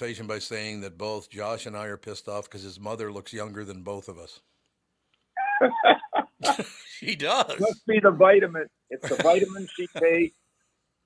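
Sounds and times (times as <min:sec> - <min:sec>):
men laughing: 0:05.4 - 0:07.8, 0:09.0 - 0:10.2.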